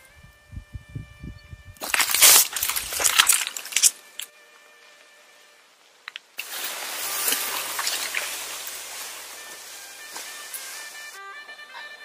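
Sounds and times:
faint music notes: 0:00.0 - 0:12.0
steady rushing hiss: 0:01.8 - 0:12.0.

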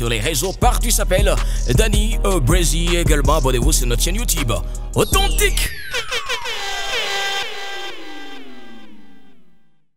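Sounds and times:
ringing tones: 0:05.0 - 0:09.4
tone sliding down in pitch: 0:05.0 - 0:09.8.

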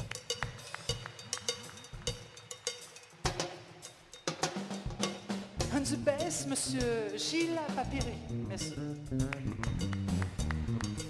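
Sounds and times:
drum and percussion music: 0:00.0 - 0:11.0.

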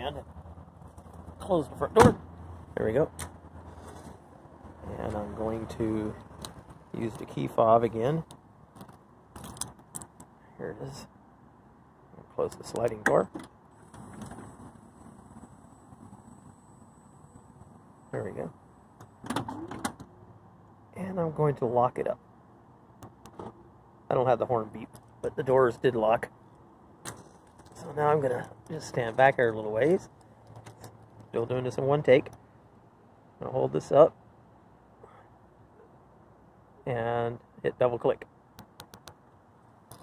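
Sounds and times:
man speaking: 0:01.4 - 0:03.2, 0:04.8 - 0:06.3, 0:06.9 - 0:08.3, 0:10.6 - 0:11.2, 0:12.2 - 0:13.3, 0:18.1 - 0:18.6, 0:20.9 - 0:22.2, 0:24.1 - 0:26.3, 0:27.7 - 0:30.1, 0:31.3 - 0:32.3, 0:33.4 - 0:34.2, 0:36.8 - 0:38.3.

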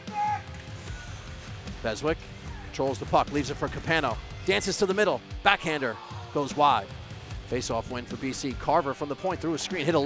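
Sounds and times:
background music with held tones: 0:00.0 - 0:10.0
man commentating: 0:01.8 - 0:10.0.

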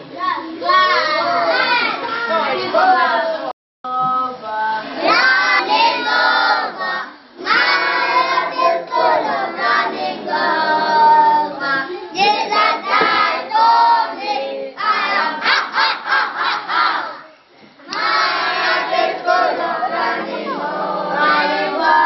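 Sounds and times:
children singing: 0:05.0 - 0:17.2, 0:17.9 - 0:22.0.

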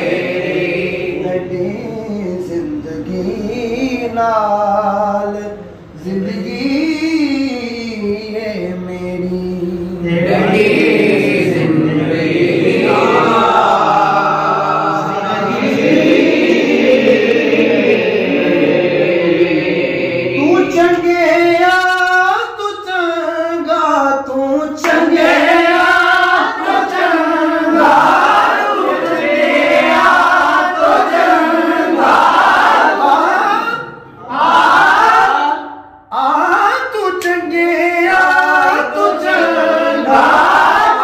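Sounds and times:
men singing unaccompanied: 0:00.0 - 0:41.0.

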